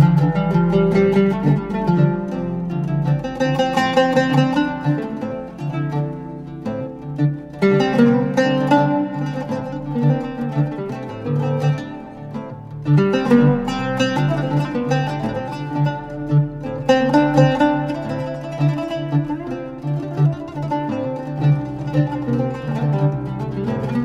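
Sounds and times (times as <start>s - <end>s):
oud melody: 0.0s - 24.0s.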